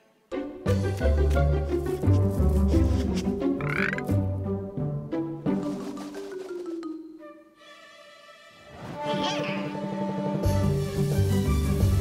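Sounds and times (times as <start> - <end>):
croaky cartoon vocal sounds: 3.6 - 4.2.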